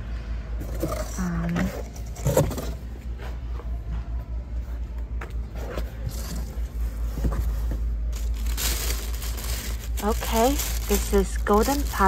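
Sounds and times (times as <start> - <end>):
plastic bags rustling: 6.0 - 12.0
steady low rumble: 6.2 - 12.0.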